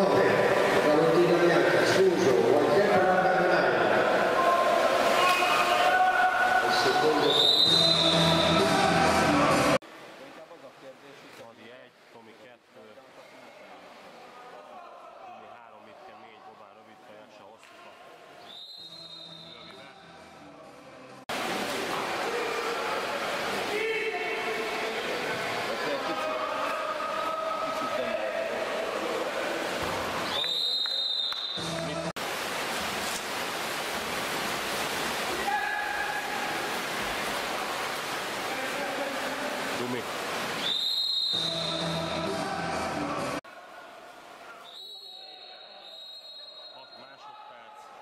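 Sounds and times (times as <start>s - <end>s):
crowd noise and voices: 0.0s - 9.9s, 13.0s - 32.1s, 41.4s - 48.0s
referee's whistle blasts: 7.2s - 8.7s, 18.4s - 19.7s, 40.6s - 42.0s, 44.6s - 47.2s.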